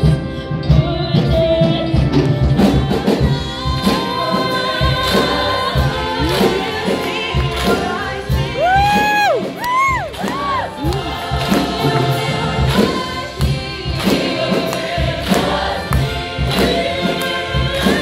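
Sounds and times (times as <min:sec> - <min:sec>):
gospel choir singing: 0:01.2 - 0:18.0
steady rhythmic beat: 0:03.2 - 0:18.0.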